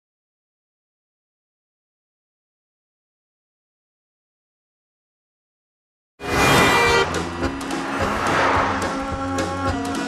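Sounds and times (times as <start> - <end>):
vehicle horn: 6.2 - 9.2
passing car traffic noise: 6.2 - 10.0.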